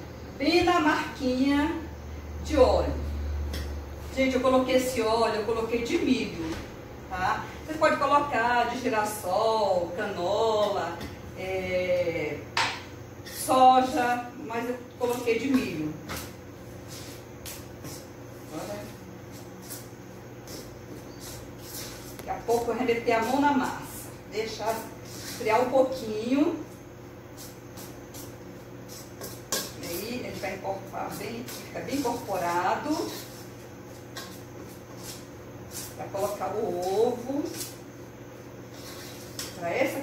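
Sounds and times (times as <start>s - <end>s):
steady low hum: 0.0s - 40.0s
spoon scraping metal bowl: 28.9s - 30.6s.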